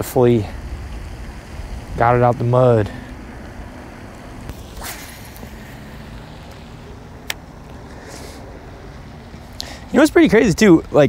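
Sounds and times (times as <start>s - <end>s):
wind noise on microphone: 0.0s - 6.9s
brief swish: 4.5s - 6.2s.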